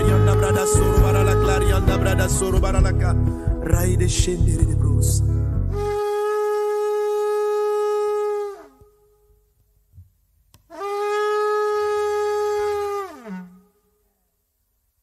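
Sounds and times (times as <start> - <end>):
horn blasts: 0.0 - 2.9, 5.7 - 9.2, 10.6 - 13.9.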